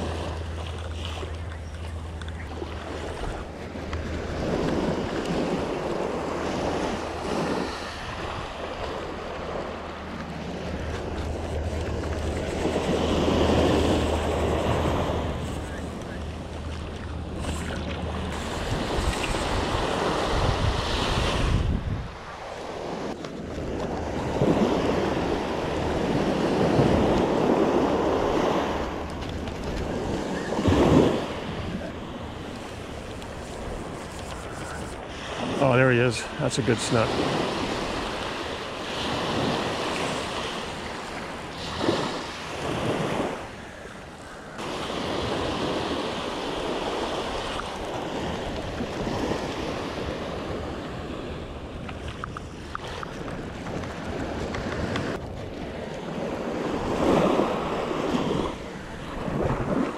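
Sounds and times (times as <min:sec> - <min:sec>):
surf washing up a sandy beach: 0:00.0 - 0:01.7, 0:02.3 - 0:59.9
wind buffeting the microphone: 0:01.4 - 0:35.6, 0:44.5 - 0:59.9.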